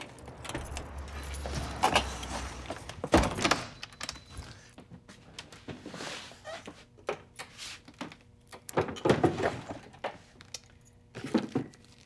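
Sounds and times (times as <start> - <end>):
keys jangling: 0.3 - 1.8.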